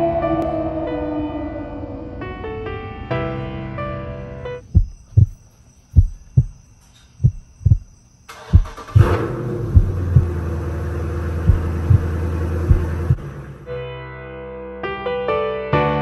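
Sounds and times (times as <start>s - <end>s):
heartbeat-like double thumps: 4.6s - 10.4s, 11.4s - 13.3s
car engine idling: 7.3s - 13.6s.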